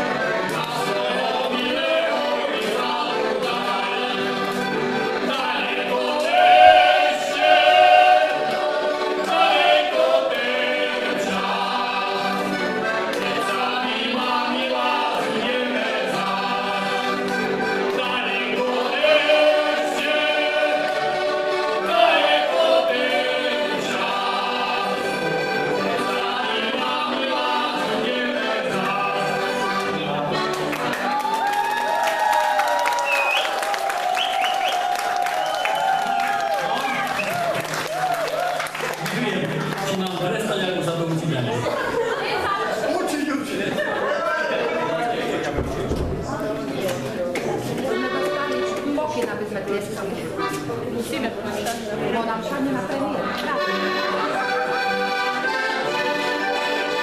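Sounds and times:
men singing: 0.0s - 30.4s
button accordions playing folk tune: 0.0s - 31.2s, 47.8s - 51.3s, 52.4s - 57.0s.

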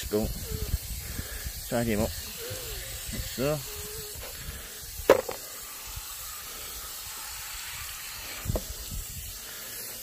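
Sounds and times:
hose spray gun hissing: 0.0s - 10.0s.

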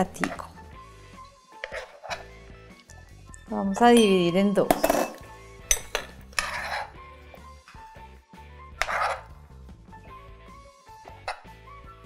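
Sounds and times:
soft background music: 0.0s - 12.0s
metal spoon scraping glass cup: 1.6s - 2.3s, 4.0s - 7.0s, 8.8s - 9.3s.

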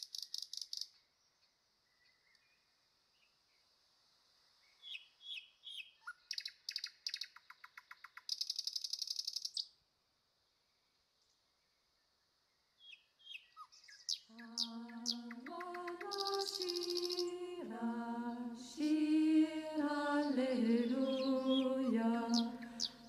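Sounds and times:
songbird chirps and trills: 0.0s - 3.8s, 4.4s - 9.8s, 10.5s - 23.0s.

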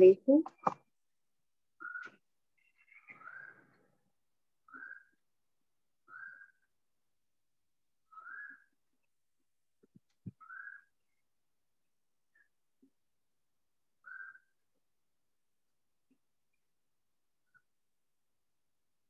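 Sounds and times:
faint whistle-like calls: 6.1s - 6.7s, 8.1s - 8.8s, 10.4s - 10.9s.

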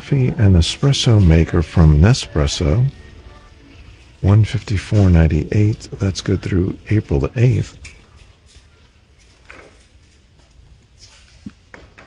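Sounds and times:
store background hum: 0.0s - 12.0s.

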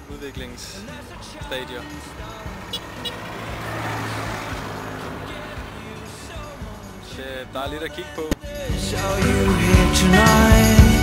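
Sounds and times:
vehicle driving past: 1.4s - 8.2s.

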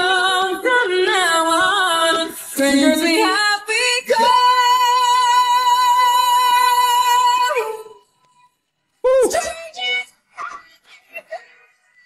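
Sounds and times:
woman singing unaccompanied: 0.0s - 8.0s.

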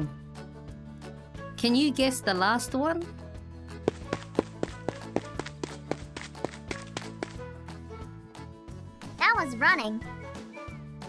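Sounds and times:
light background music: 0.0s - 11.0s
quick sharp taps: 3.9s - 7.4s.

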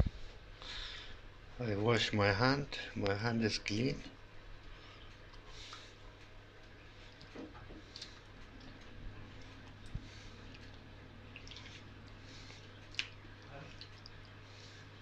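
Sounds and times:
steady low hum: 0.0s - 15.0s
wet squelching and dripping batter: 4.6s - 15.0s.

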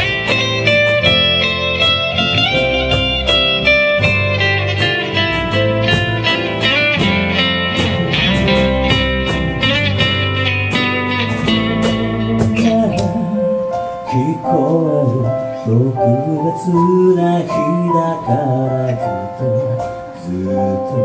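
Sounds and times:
acoustic band playing instrumental: 0.0s - 21.0s
picked guitar lead melody: 0.0s - 21.0s.

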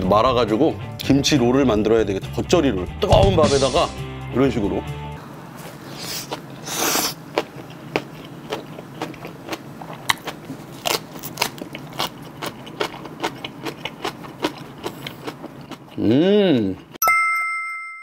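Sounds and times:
crunchy chewing: 5.6s - 17.0s
crunchy bite: 6.0s - 15.4s.

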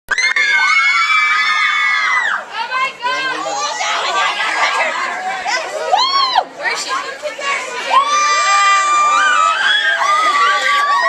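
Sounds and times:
crowd screaming: 0.1s - 2.5s, 5.8s - 6.5s, 7.9s - 11.0s
crowd shouting and cheering: 0.1s - 11.0s.

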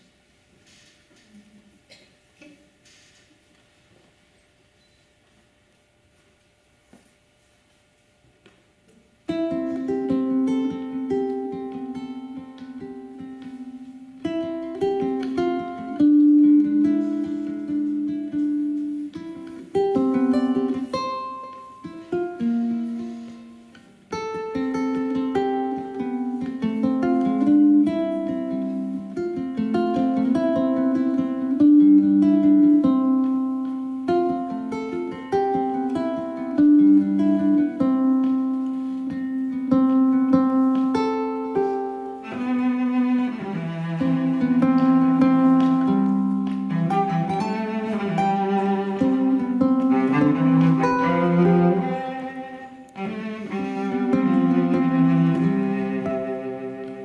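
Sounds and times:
solo ukulele melody: 9.2s - 57.0s.

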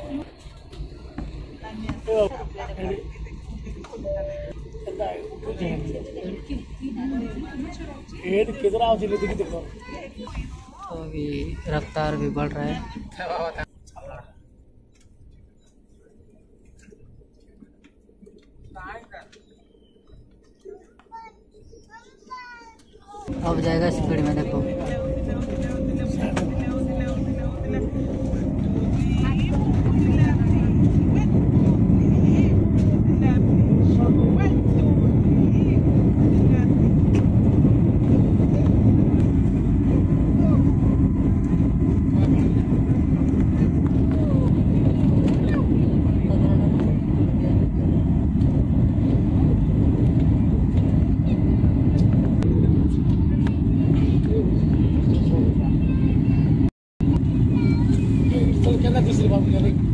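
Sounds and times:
rising engine whine: 0.0s - 10.9s, 23.3s - 59.9s
jet engines rumbling in cabin: 0.0s - 22.0s, 23.3s - 59.9s.

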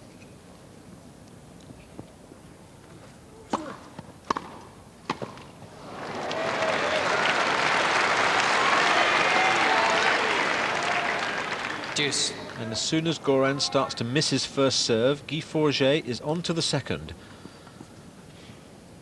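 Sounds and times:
racket hitting tennis ball: 3.5s - 5.5s
crowd applause and cheering: 5.7s - 13.2s.

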